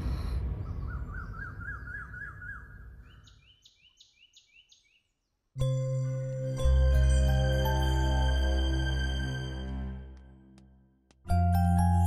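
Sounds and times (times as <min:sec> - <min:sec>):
birds chirping: 0:00.0 - 0:05.5
soft music with held tones: 0:05.6 - 0:10.6, 0:11.3 - 0:12.0
background music: 0:05.6 - 0:12.0.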